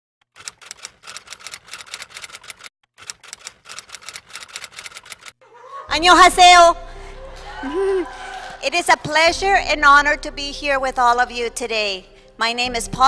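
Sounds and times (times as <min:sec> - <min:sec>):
rapid sharp clicks: 0:00.2 - 0:05.4.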